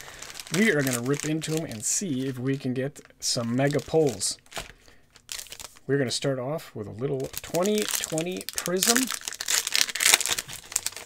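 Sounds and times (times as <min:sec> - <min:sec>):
foil wrapper tearing and crinkling: 0:00.0 - 0:02.4, 0:03.6 - 0:05.8, 0:07.2 - 0:11.0.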